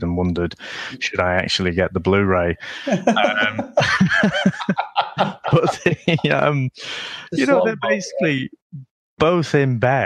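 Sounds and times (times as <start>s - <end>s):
man chuckling: 2.6s - 8.4s.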